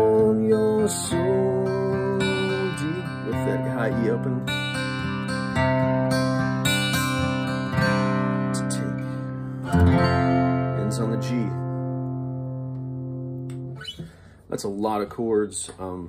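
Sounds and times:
acoustic guitar strumming chords: 0:00.0 - 0:14.5.

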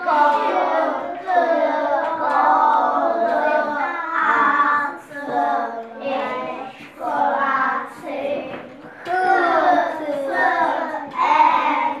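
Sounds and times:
children chanting in unison: 0:00.0 - 0:12.0.

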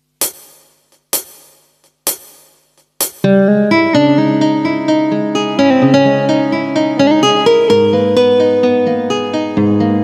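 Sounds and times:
percussive count-in hits: 0:00.2 - 0:03.3.

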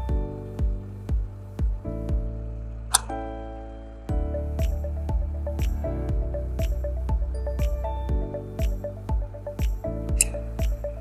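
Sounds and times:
upbeat background music: 0:00.0 - 0:11.0.

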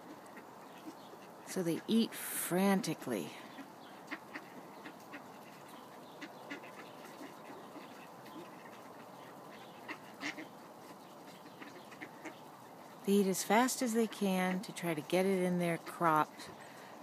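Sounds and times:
soft duck quacks: 0:00.0 - 0:02.0, 0:03.4 - 0:12.4
duck bills pecking: 0:00.0 - 0:02.2, 0:03.5 - 0:16.6.

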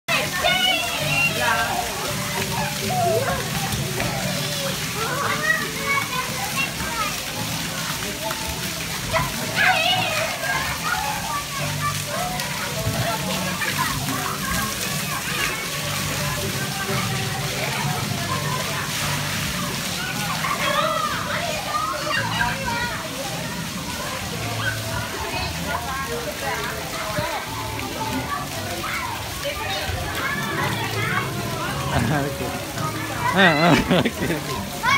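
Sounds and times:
children chattering and calling: 0:00.1 - 0:34.9
water jets spraying and splashing: 0:00.1 - 0:34.9.

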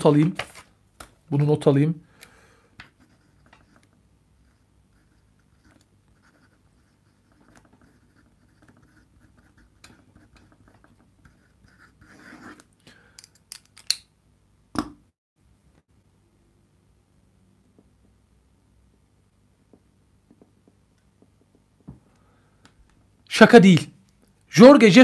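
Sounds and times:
pen scratching on paper: 0:02.9 - 0:12.7.

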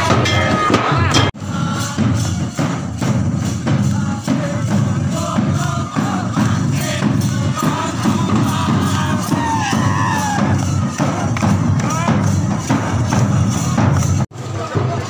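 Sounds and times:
barrel drum beating: 0:00.0 - 0:15.0
crowd voices: 0:00.0 - 0:15.0
jingling hand percussion: 0:00.0 - 0:15.0.

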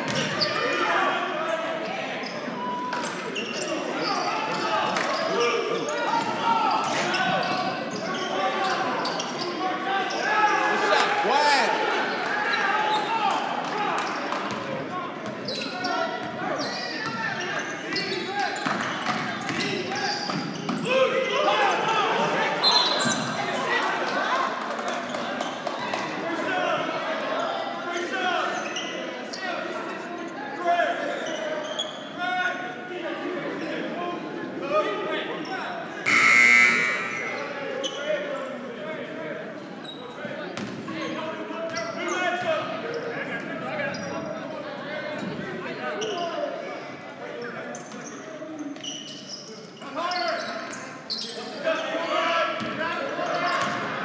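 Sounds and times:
echoing voices: 0:32.2 - 0:39.6.

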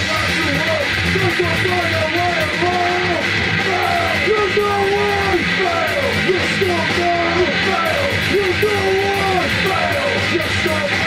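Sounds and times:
grindcore band playing: 0:00.0 - 0:11.0
person yelling vocals: 0:02.2 - 0:11.0.

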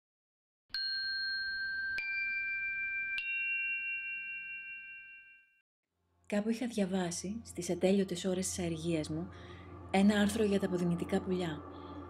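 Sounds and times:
rising bell-like chime notes: 0:00.8 - 0:05.6.

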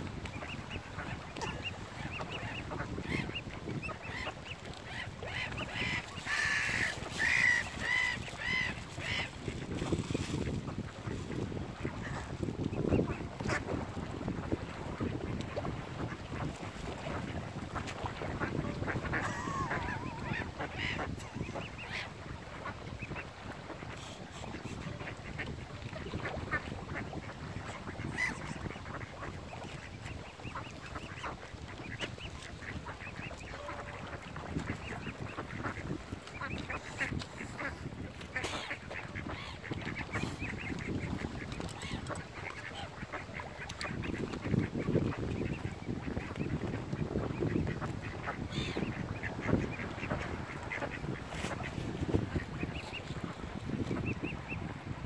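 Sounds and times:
ducks quacking: 0:00.2 - 0:09.7, 0:10.4 - 0:54.7
swans calling: 0:00.4 - 0:09.4, 0:18.1 - 0:23.3.

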